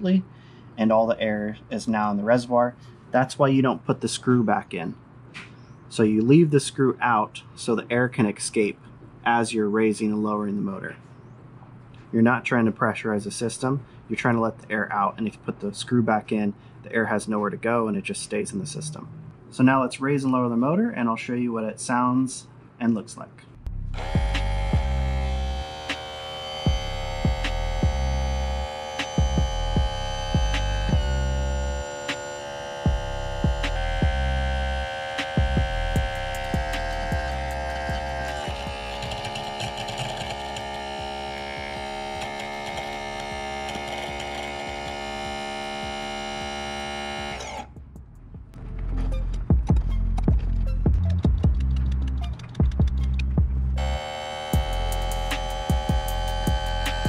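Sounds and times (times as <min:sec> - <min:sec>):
electric trim pump humming: 0:23.7 - 0:47.8, 0:53.8 - 0:57.0
background music with beat: 0:24.0 - 0:38.8, 0:44.0 - 0:57.0
scattered clicks: 0:51.0 - 0:53.4.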